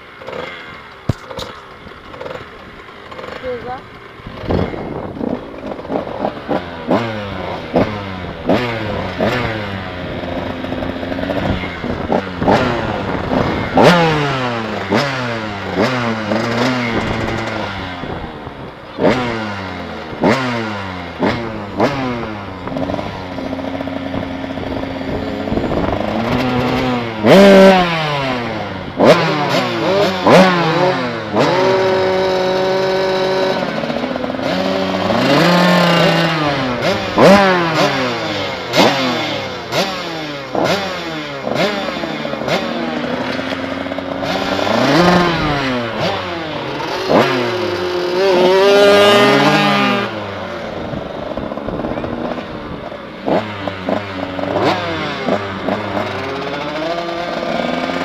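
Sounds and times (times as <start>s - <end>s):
motorcycle engines revving: 0.0s - 58.0s.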